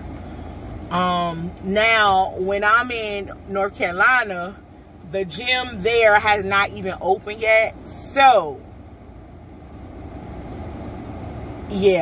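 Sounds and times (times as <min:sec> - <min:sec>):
car interior low rumble: 0:00.0 - 0:12.0.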